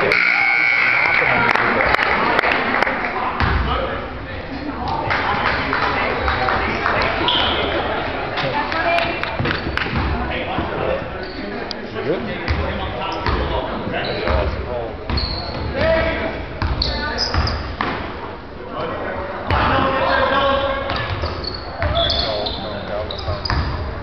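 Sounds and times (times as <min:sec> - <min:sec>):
voices in a gym: 0:00.0 - 0:24.0.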